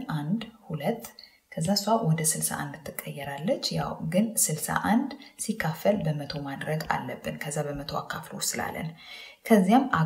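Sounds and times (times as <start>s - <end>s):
woman talking: 0.0s - 10.0s.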